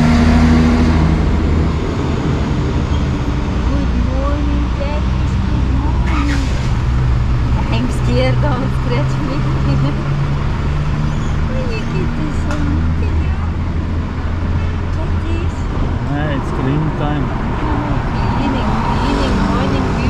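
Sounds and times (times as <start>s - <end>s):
low hum of traffic or engine: 0.0s - 20.0s
people talking: 3.7s - 6.6s, 7.6s - 10.0s, 11.5s - 13.6s, 14.9s - 20.0s.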